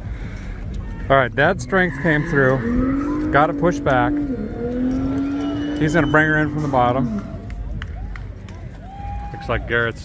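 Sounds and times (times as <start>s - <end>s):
low steady rumble: 0.0s - 9.4s.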